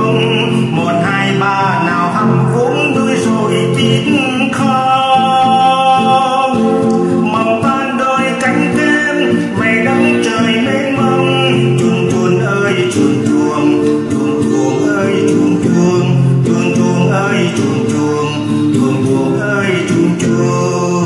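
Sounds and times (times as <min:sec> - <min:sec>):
acoustic guitar: 0:00.0 - 0:21.0
man singing slow song: 0:00.0 - 0:21.0.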